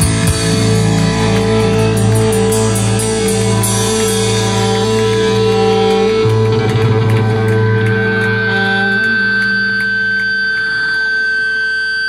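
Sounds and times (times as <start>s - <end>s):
saxophone and electric guitar chord: 0.0s - 12.0s.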